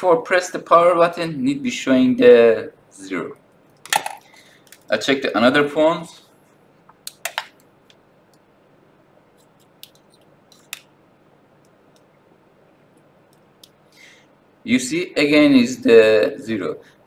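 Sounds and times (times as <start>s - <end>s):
clip leads clicking: 6.9s - 8.5s, 9.4s - 10.9s.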